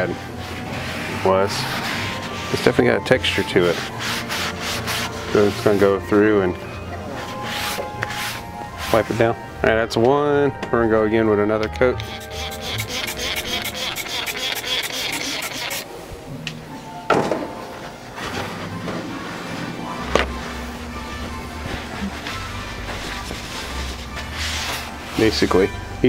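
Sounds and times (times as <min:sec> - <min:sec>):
background music ticking beat: 0:11.5 - 0:15.8.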